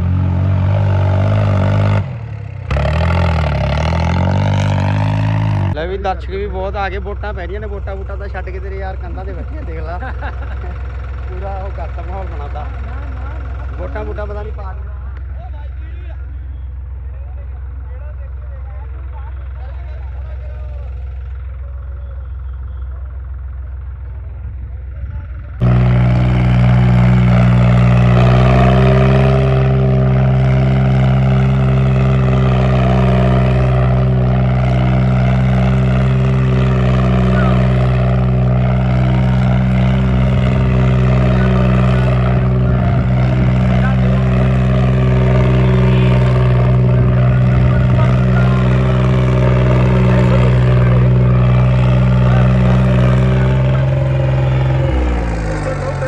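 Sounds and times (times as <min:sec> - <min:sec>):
tractor diesel engine at high revs: 0:00.0 - 0:56.0.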